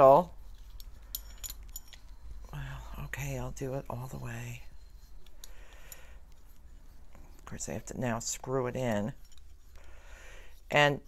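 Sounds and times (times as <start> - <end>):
soft scraping: 0.3 - 11.0.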